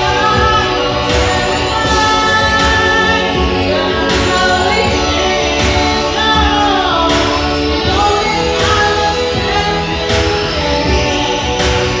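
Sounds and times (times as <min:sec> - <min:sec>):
instrumental backing track: 0:00.0 - 0:12.0
woman singing into a microphone: 0:00.0 - 0:12.0.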